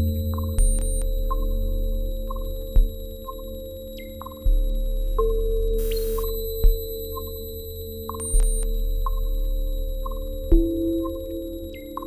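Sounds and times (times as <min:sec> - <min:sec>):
deep bass with sharp hit: 0:00.0 - 0:07.5, 0:08.1 - 0:11.7.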